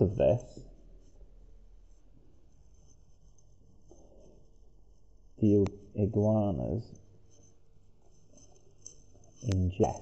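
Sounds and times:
pen rustling on paper: 0.6s - 6.0s, 7.0s - 10.0s.

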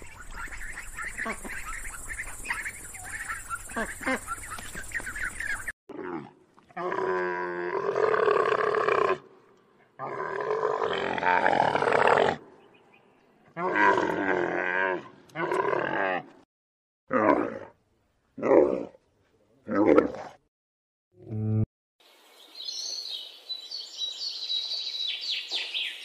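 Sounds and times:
animal calling: 0.0s - 5.7s.

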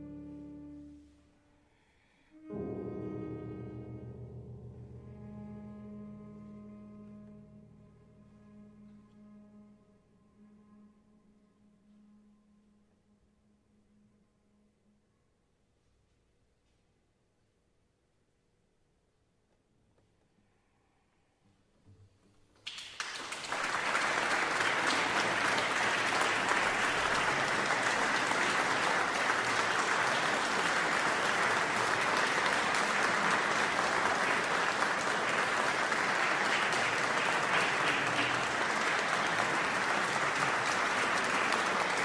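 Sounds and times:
audience applause: 22.6s - 42.0s.

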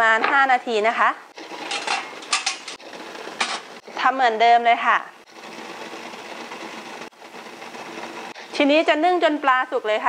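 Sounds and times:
water boiling under a steamer: 4.0s - 10.0s.

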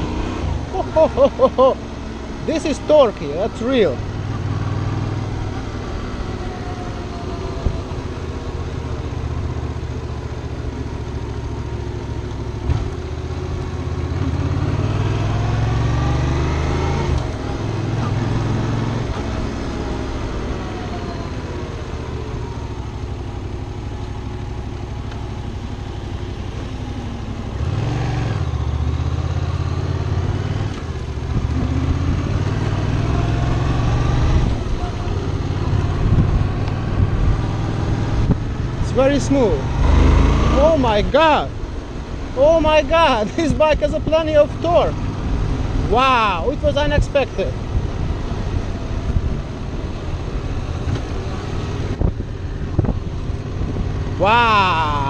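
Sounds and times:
motorcycle engine accelerating: 0.0s - 55.0s
road noise: 0.0s - 55.0s.

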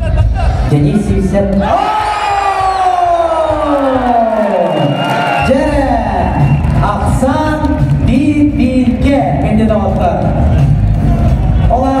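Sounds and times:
crowd cheering: 1.4s - 9.0s, 9.7s - 12.0s.

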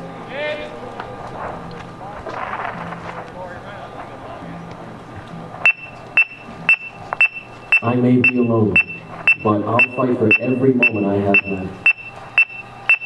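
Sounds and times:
indistinct talk: 0.0s - 11.9s
electronic metronome beeps: 5.7s - 13.0s.

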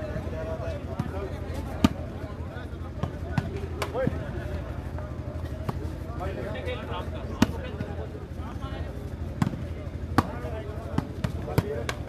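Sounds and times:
murmur of crowd voices: 0.0s - 12.0s
volleyball slaps: 0.9s - 2.2s, 3.0s - 4.2s, 7.2s - 7.9s, 9.4s - 12.0s.

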